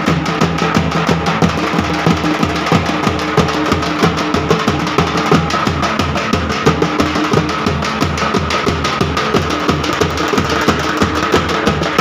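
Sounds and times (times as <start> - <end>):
bass drums beating: 0.0 - 12.0.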